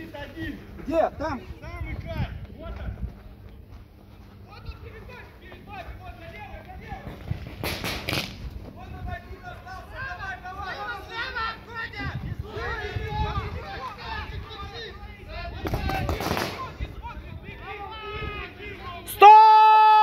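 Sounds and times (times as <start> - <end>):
paintball marker pops: 7.6 - 8.4
people calling out: 8.9 - 20.0.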